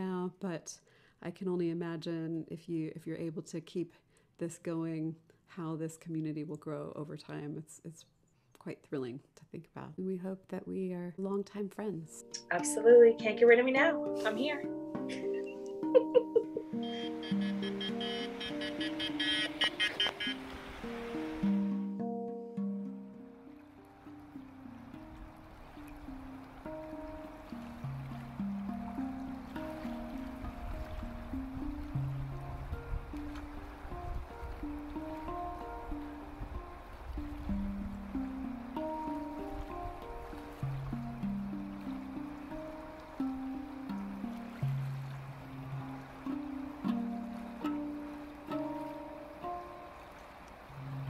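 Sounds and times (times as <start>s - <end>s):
handpan melody: 11.8s - 51.0s
river water flowing: 14.0s - 51.0s.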